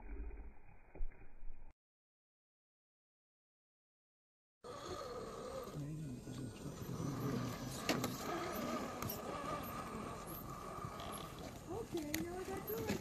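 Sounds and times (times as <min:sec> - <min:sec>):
electric motor and gears whining: 0:04.7 - 0:13.0.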